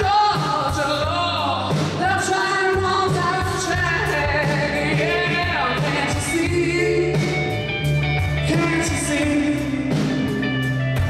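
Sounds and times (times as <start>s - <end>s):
man singing: 0.0s - 7.6s, 8.3s - 10.3s
rock band playing: 0.0s - 11.0s.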